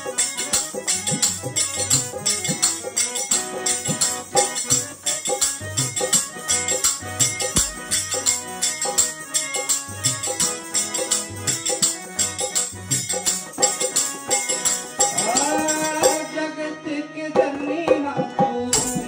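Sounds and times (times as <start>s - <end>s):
jingling percussion: 0.0s - 16.5s, 18.5s - 19.0s
harmonium playing chords: 0.0s - 19.0s.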